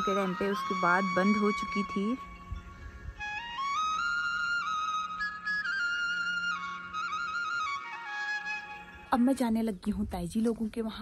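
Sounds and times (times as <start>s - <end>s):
solo flute melody: 0.0s - 9.2s.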